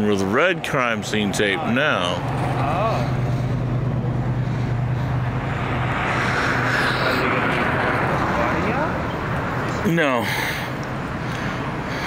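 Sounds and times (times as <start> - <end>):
low engine hum: 0.0 - 12.0
rushing vehicle noise: 0.0 - 12.0.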